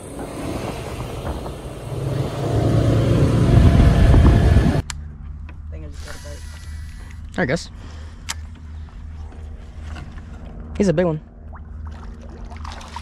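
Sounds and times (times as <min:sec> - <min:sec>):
car road and wind noise: 0:00.0 - 0:06.4
low hum: 0:00.0 - 0:13.0.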